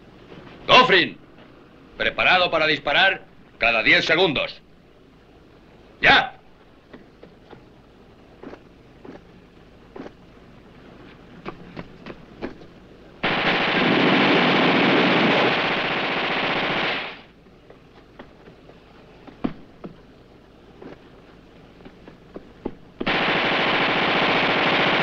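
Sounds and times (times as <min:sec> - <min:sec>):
footfalls running on stony ground: 0:11.4 - 0:12.8
machine gun burst: 0:13.2 - 0:17.3, 0:23.0 - 0:25.0.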